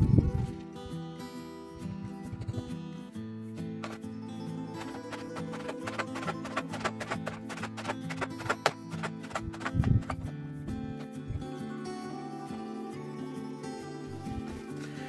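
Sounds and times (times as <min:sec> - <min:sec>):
background guitar music: 0:00.0 - 0:15.0
knife chopping on cutting board: 0:04.8 - 0:10.3.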